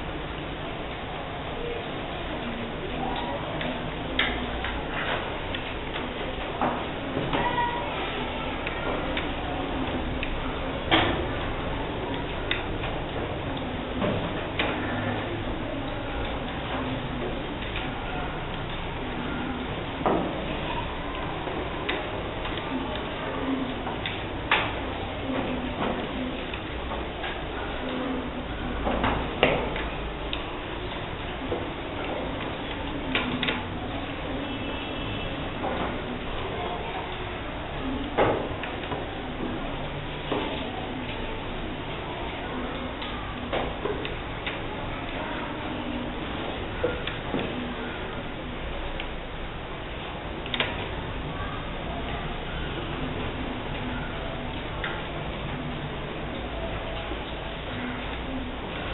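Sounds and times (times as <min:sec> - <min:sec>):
room noise: 0:00.0 - 0:58.9
steady background hiss: 0:00.0 - 0:58.9.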